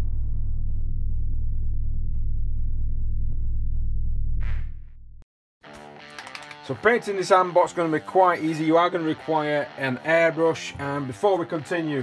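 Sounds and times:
deep rumbling drone: 0:00.0 - 0:05.2.

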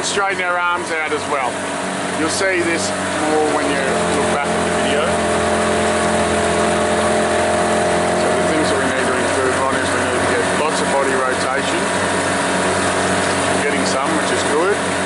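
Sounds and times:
motorboat engine droning: 0:00.0 - 0:15.0.

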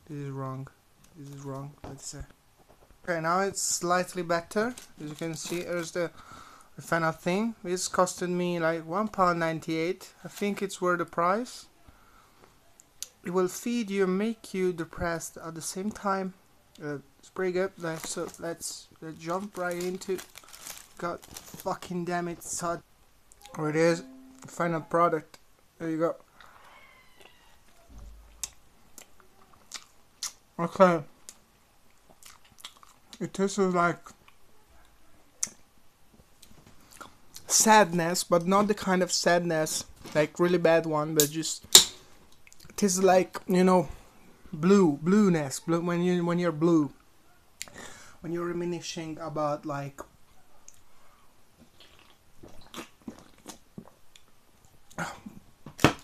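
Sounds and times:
person chewing food: 0:28.3 - 0:30.4, 0:31.9 - 0:33.1, 0:51.6 - 0:55.0.

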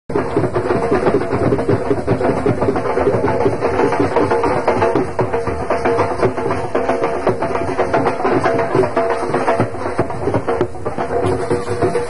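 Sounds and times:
fast dense drumming: 0:00.1 - 0:12.0.

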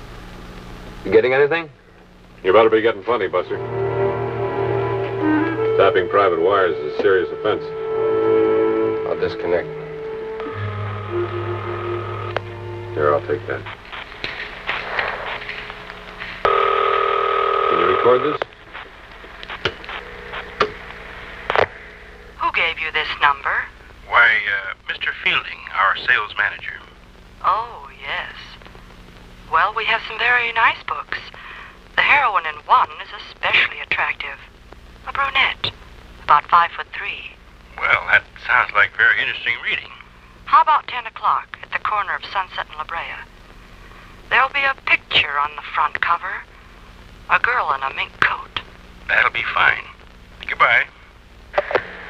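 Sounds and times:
steady low hum: 0:00.0 - 0:52.0
voices over telephone line: 0:12.8 - 0:14.1, 0:16.5 - 0:18.5, 0:22.4 - 0:28.6, 0:29.5 - 0:43.3, 0:44.3 - 0:46.5, 0:47.3 - 0:51.0.

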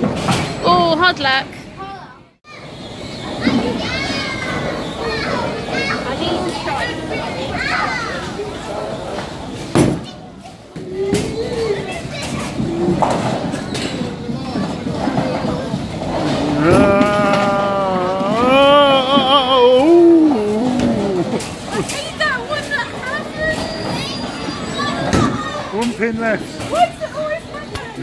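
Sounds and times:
person making wavering vocal sounds: 0:16.2 - 0:21.5.

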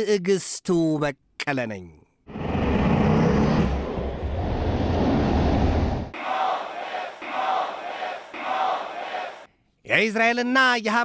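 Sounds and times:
fighter jet engine rumble: 0:02.3 - 0:06.1
crowd chanting in rhythm: 0:06.1 - 0:09.5.

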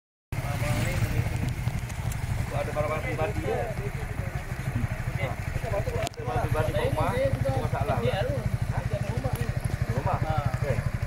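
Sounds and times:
faint voices: 0:00.4 - 0:11.0
motorcycle engine idling: 0:00.4 - 0:11.0.

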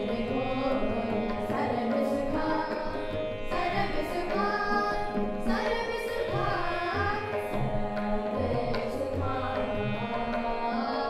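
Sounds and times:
harmonium and strings: 0:00.0 - 0:11.0.

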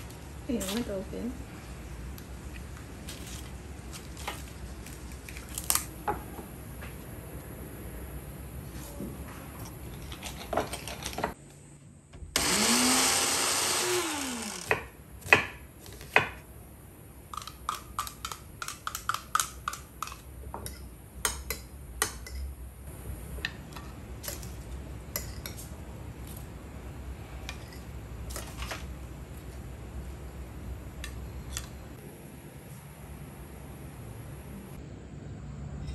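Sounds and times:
food chopper whirring: 0:12.4 - 0:14.9.

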